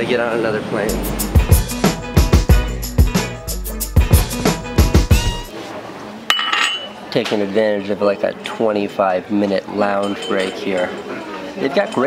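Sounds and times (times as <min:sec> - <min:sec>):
drum-driven music: 0:00.9 - 0:05.5
tableware clinking: 0:06.3 - 0:07.1, 0:09.8 - 0:12.0.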